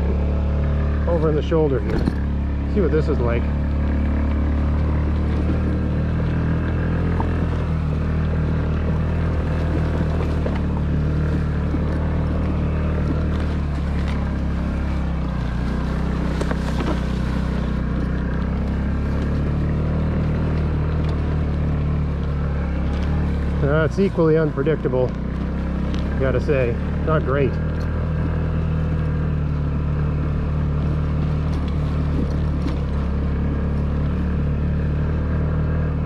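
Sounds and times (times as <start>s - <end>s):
scooter engine running: 0.0s - 36.0s.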